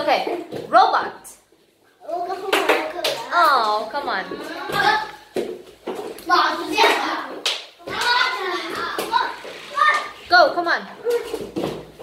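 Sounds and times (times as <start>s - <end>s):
children shouting and chattering: 2.0s - 5.4s, 6.1s - 10.3s, 10.9s - 11.6s.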